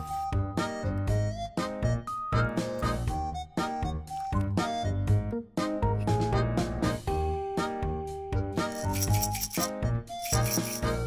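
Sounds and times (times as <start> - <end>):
background music with a beat: 0.0 - 11.0
salt shaken from glass jar: 8.7 - 11.0.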